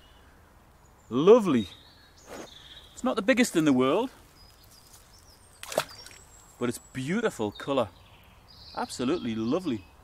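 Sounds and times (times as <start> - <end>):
quiet outdoor background: 0.0 - 10.0
fish splashing into water: 5.6 - 6.3.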